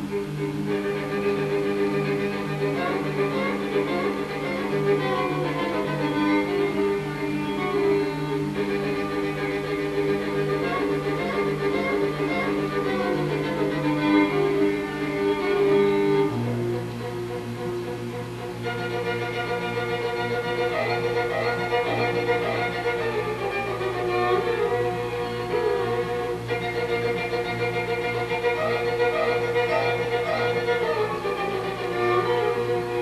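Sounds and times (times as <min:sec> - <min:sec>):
bowed strings music: 0:00.0 - 0:33.0.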